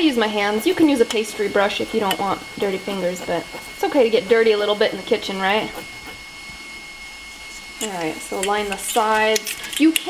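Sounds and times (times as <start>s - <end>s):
stand mixer motor whining: 0.0s - 10.0s.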